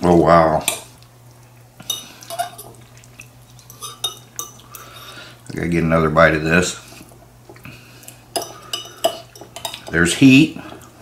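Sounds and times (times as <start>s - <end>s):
utensil clinking against bowl: 1.8s - 2.8s, 3.7s - 5.2s, 8.3s - 10.9s.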